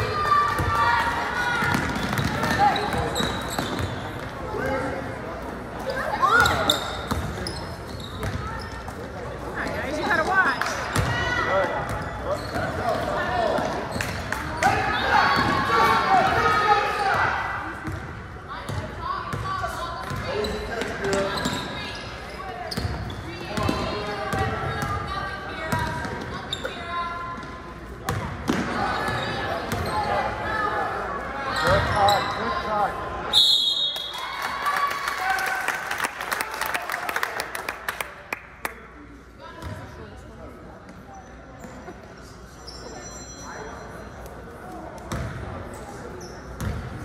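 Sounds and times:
people talking and shouting: 0.0s - 36.0s.

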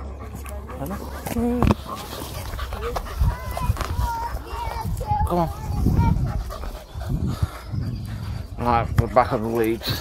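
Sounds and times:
dog panting: 0.0s - 10.0s
low rumble on microphone: 1.0s - 9.1s.

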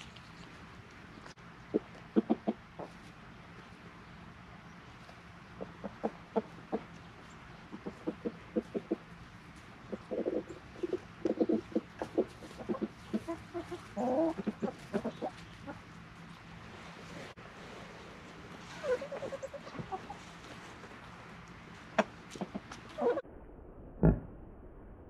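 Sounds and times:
chickens clucking: 1.1s - 17.4s, 18.2s - 23.2s.

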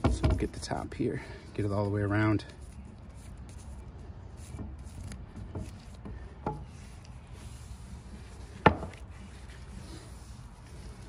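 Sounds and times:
gloved hand rubbing wooden handle: 1.6s - 11.0s.

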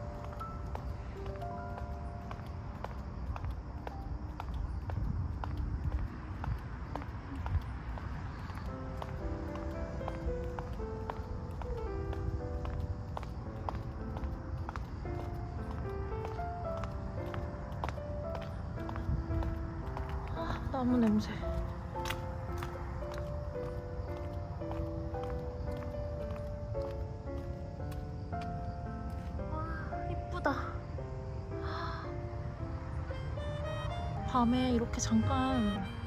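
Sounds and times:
steady low rumble: 0.0s - 29.1s
light melody of stepped notes: 0.0s - 30.5s, 31.6s - 36.0s.

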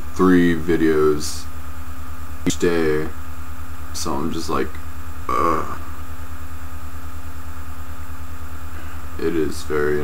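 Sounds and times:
pulsing low hum: 0.0s - 10.0s.

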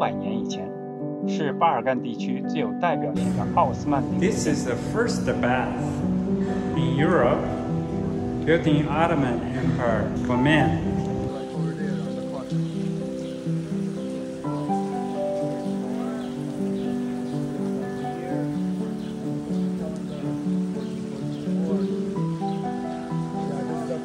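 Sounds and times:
slow melody of held notes: 0.0s - 24.0s.

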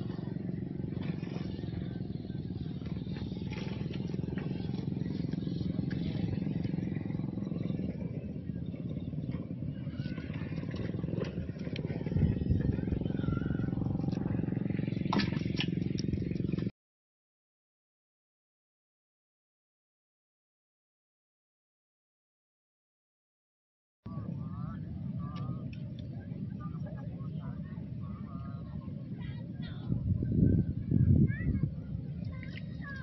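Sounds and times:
road traffic rumbling: 0.0s - 16.7s.

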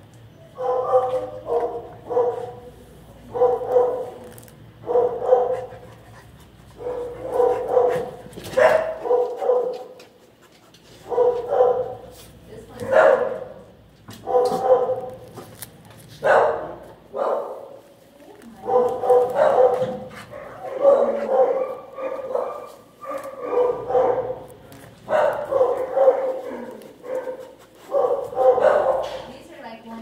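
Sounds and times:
dog barking: 0.5s - 2.7s, 3.3s - 5.8s, 6.8s - 10.0s, 11.0s - 12.2s, 12.8s - 15.2s, 16.2s - 17.8s, 18.6s - 29.3s.

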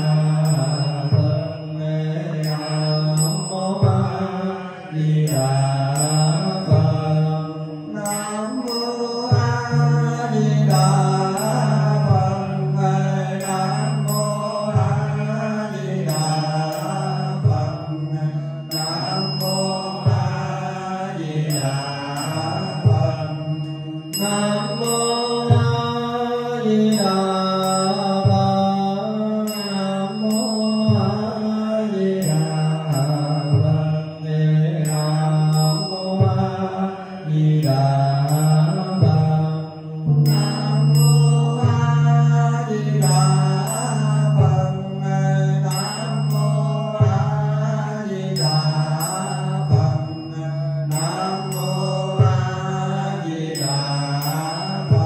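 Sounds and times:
low voices chanting: 0.0s - 55.0s.

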